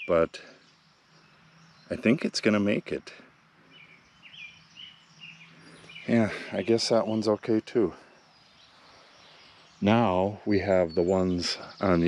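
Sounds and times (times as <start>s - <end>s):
bird chirping: 0.0s - 12.0s.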